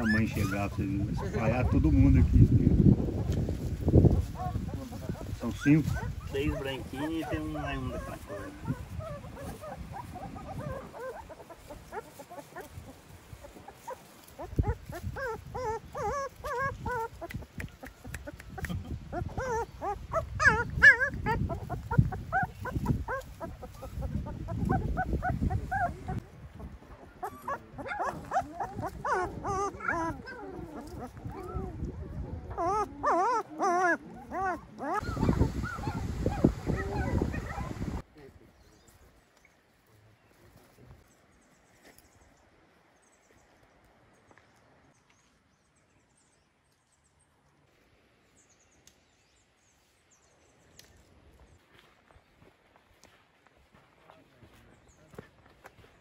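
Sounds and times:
puppies whimpering and yelping: 0.0s - 2.3s, 4.1s - 38.0s.

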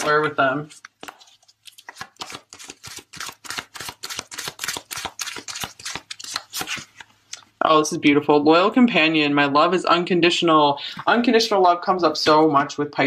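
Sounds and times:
cards being shuffled: 0.0s - 7.2s.

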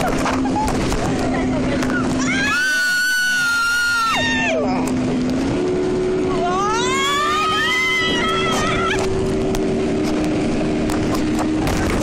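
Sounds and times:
wind and spray rushing: 0.0s - 2.2s, 7.2s - 12.0s
speedboat engine drone: 0.0s - 12.0s.

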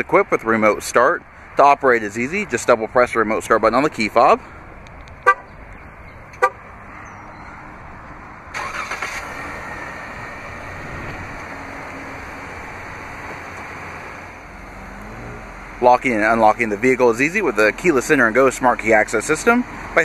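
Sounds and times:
car horn chirp: 5.2s - 5.5s, 6.4s - 6.6s
engine cranking and idling: 8.5s - 14.6s.

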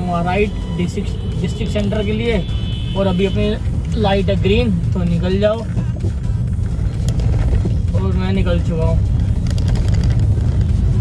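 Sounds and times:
car engine and tyres rumbling: 0.0s - 11.0s.

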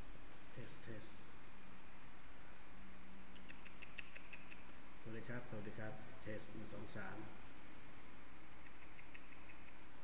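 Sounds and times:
computer mouse clicks: 3.4s - 4.8s, 8.6s - 9.8s.

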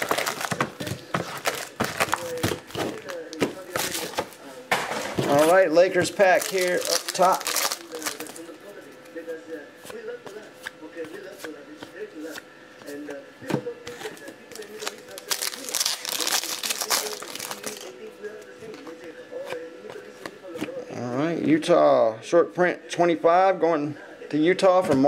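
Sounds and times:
card pack wrapper crinkling: 0.0s - 4.2s, 6.2s - 8.4s, 14.5s - 17.9s
faint music: 0.0s - 25.0s.

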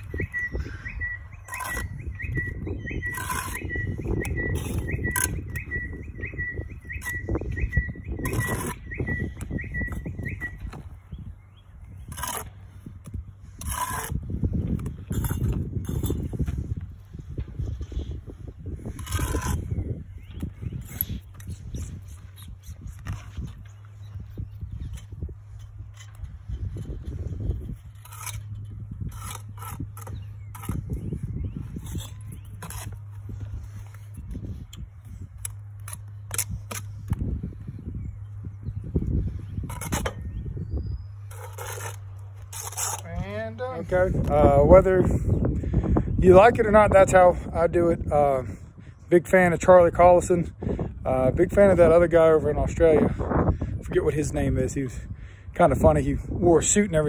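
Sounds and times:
thin high chirp: 0.0s - 12.4s
trowel clicking and scraping on brick: 1.4s - 2.0s, 3.0s - 5.6s, 8.2s - 8.8s, 12.1s - 16.3s, 18.9s - 19.7s, 27.9s - 31.0s, 31.7s - 33.2s, 39.6s - 40.2s, 41.3s - 43.1s.

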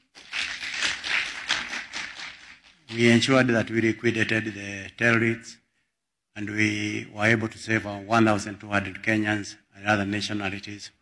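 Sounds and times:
audience applauding: 0.0s - 3.1s.

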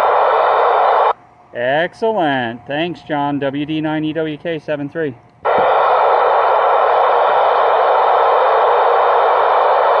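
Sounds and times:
radio static hiss: 0.0s - 1.2s, 5.5s - 10.0s.

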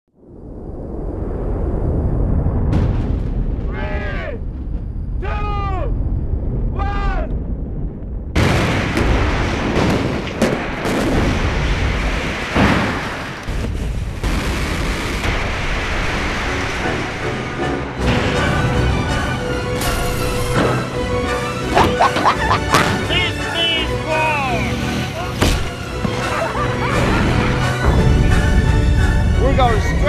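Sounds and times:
low rumble: 0.1s - 12.5s.

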